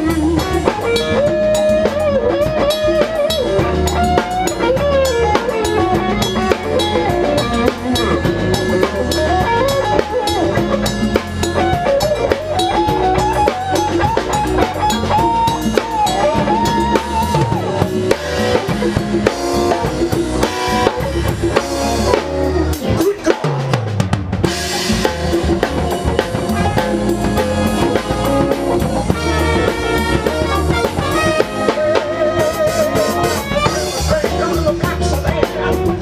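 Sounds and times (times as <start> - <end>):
bass: 0.0 - 36.0
congas: 0.0 - 36.0
drum kit: 0.0 - 36.0
keyboard: 0.0 - 36.0.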